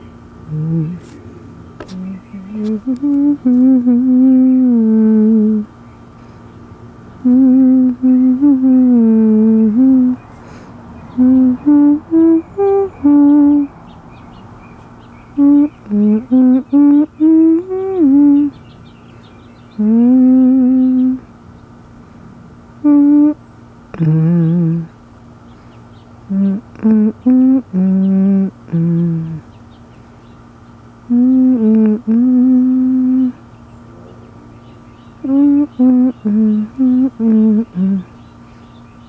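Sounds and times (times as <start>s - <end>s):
person humming a slow tune: 0.0s - 1.2s, 1.8s - 5.7s, 7.2s - 10.3s, 11.1s - 13.8s, 15.4s - 18.6s, 19.7s - 21.3s, 22.8s - 25.0s, 26.3s - 29.5s, 31.0s - 33.4s, 35.2s - 38.2s.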